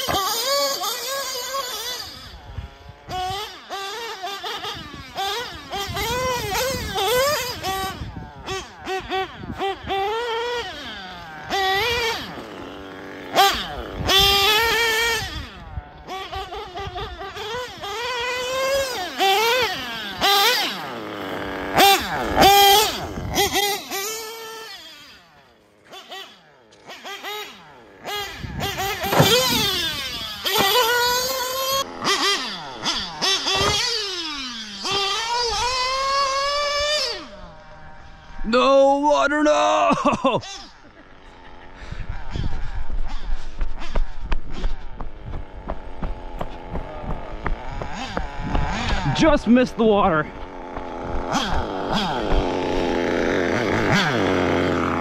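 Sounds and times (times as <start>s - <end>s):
rc truck engine revving: 0.0s - 55.0s.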